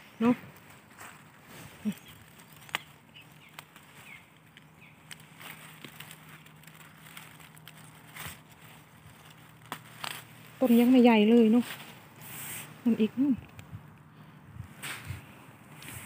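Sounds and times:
rustling of leaves and stems: 0.0 - 16.0
small stem snaps: 2.4 - 3.8.

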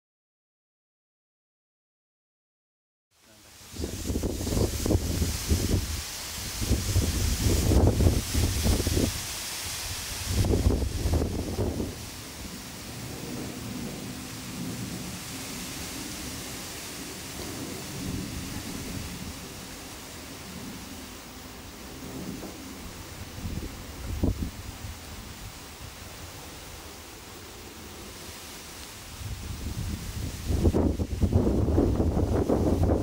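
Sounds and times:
wind buffeting microphone: 3.7 - 19.7, 21.9 - 26.4, 29.1 - 33.0.

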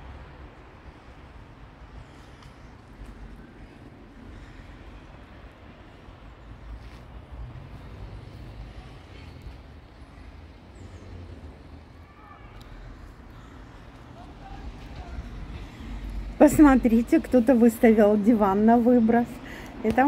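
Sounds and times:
wind rumble on microphone: 12.9 - 17.4.

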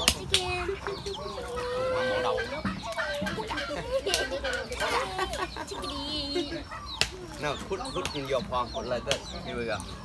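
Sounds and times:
chickens clucking: 0.0 - 10.0
voices: 0.0 - 10.0.

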